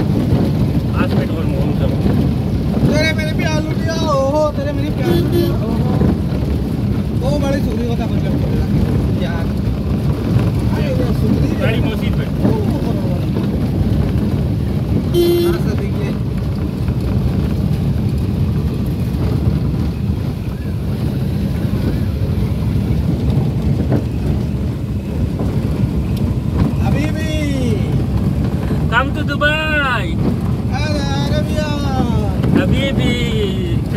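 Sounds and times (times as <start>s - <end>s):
car road and engine noise: 0.0s - 33.9s
car horn toot: 5.0s - 5.8s, 15.1s - 15.8s.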